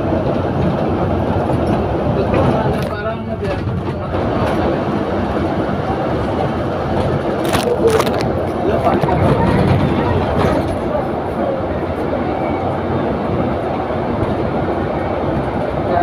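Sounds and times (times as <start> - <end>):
bus engine and road noise: 0.0 - 16.0.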